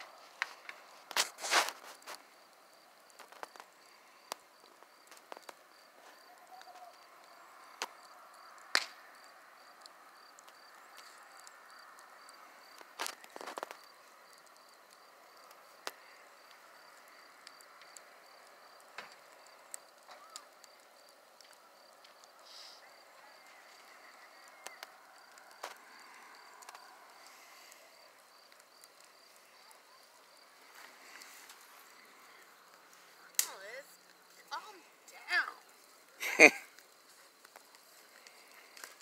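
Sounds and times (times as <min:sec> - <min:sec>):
bonfire crackling and popping: 0:00.0 - 0:39.0
crickets chirping: 0:00.0 - 0:39.0.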